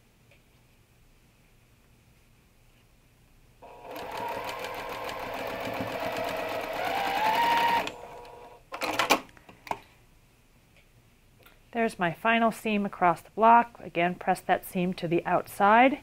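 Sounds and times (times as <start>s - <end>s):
sewing machine stitching: 3.6s - 9.2s.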